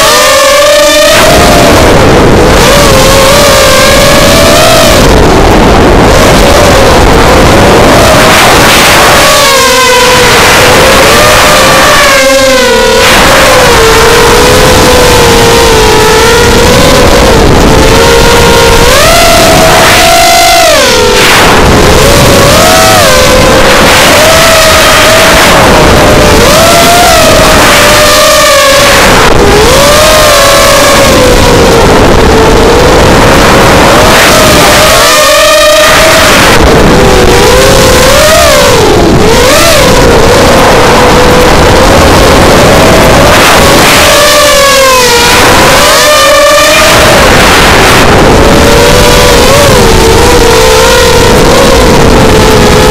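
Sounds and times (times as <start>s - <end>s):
drone motors whining: 0.0s - 52.9s
rushing air: 0.0s - 52.9s.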